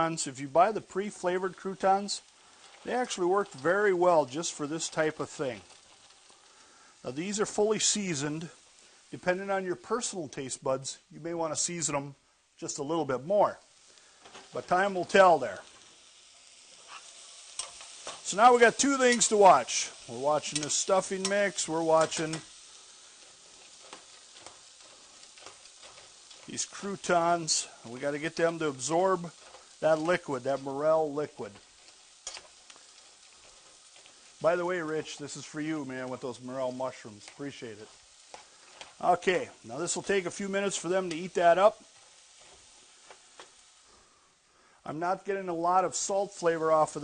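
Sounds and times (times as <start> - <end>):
vegetables sizzling in a frying pan: 0.0 - 47.0.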